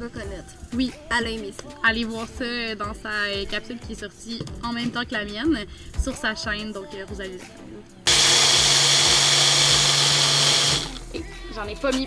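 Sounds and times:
blender motor whining: 0:08.1 - 0:11.1.

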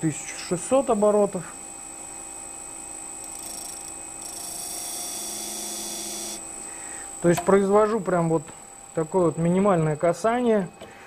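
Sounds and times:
sharpening disc humming: 0:03.2 - 0:06.5.

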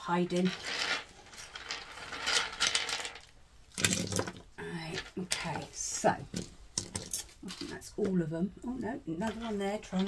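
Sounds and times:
resin pieces clicking and clattering: 0:00.4 - 0:05.5.

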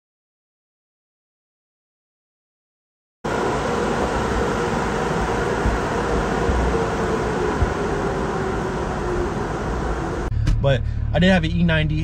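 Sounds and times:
car engine running: 0:03.3 - 0:12.0.

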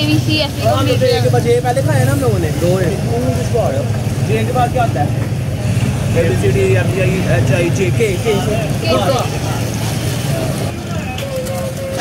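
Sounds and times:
people talking: 0:00.0 - 0:05.3, 0:06.0 - 0:12.0
street traffic rumble: 0:00.0 - 0:12.0.

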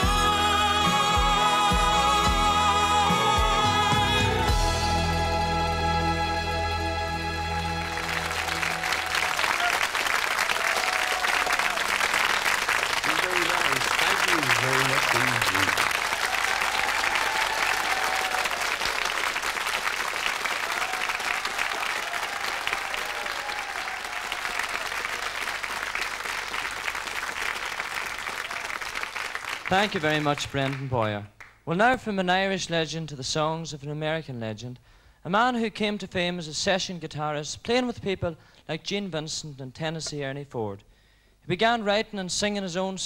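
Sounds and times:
audience applauding: 0:07.5 - 0:31.6.

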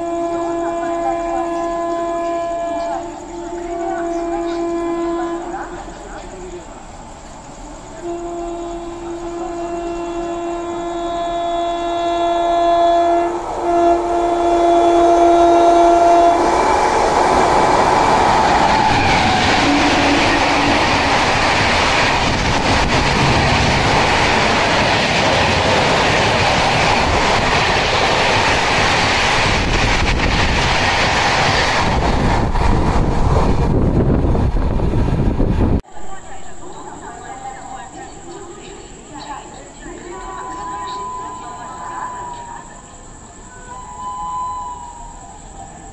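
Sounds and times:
train horn blast: 0:00.0 - 0:06.2, 0:07.8 - 0:23.4, 0:39.9 - 0:42.7, 0:43.5 - 0:45.3
train rushing past: 0:00.0 - 0:45.9.

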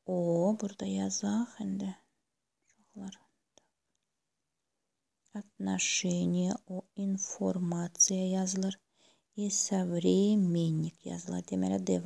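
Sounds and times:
person talking: 0:00.0 - 0:02.0, 0:05.4 - 0:08.8, 0:09.4 - 0:12.0.

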